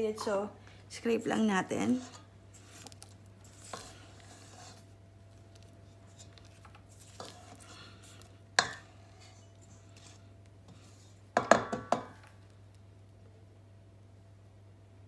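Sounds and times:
spatula scraping metal bowl: 0:01.4 - 0:05.0, 0:06.0 - 0:11.2
spatula knocking on bowl: 0:11.4 - 0:12.2.

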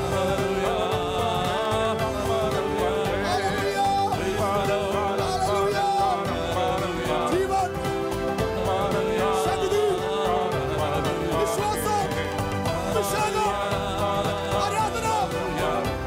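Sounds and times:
person singing worship music: 0:00.0 - 0:16.0.

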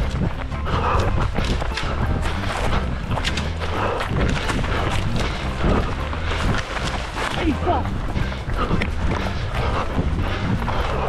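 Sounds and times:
low rumble: 0:00.0 - 0:11.0
running footsteps in forest: 0:00.0 - 0:11.0.

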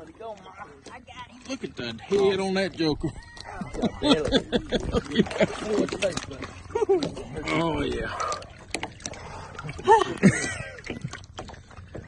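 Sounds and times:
lake water sloshing: 0:00.0 - 0:12.0
small splashes and knocks: 0:00.0 - 0:12.0
people laughing: 0:02.9 - 0:07.5, 0:09.7 - 0:11.1.

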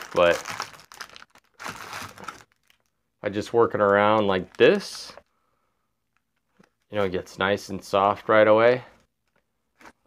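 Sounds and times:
plastic wrapper crinkling: 0:00.0 - 0:05.2.

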